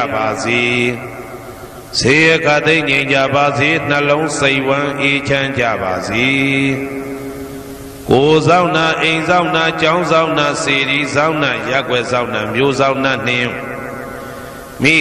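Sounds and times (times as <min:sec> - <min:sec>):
man chanting: 0:00.0 - 0:07.2, 0:08.1 - 0:15.0.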